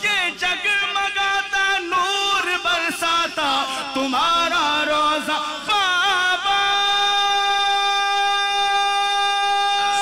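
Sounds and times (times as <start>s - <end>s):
man singing long note: 0.0s - 10.0s.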